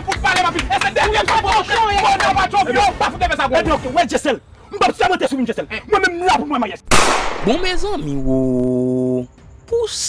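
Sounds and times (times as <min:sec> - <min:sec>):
sharp crack-like slam with hiss: 0:06.9 - 0:07.8.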